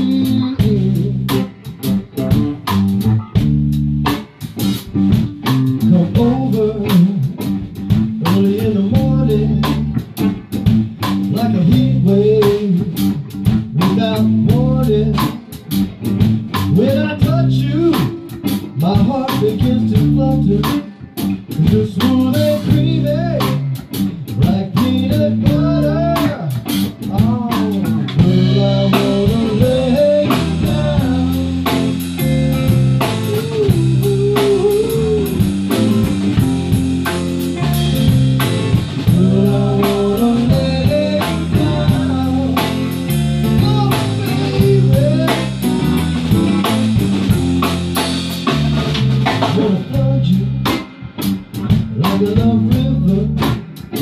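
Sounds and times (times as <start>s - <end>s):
bending lead guitar melody: 0.0s - 54.0s
regular beat: 0.0s - 54.0s
strummed blues guitar rhythm: 0.0s - 54.0s.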